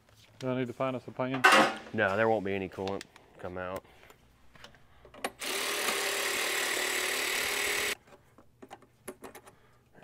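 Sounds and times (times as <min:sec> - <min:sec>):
handheld power tool running: 0:05.4 - 0:08.0.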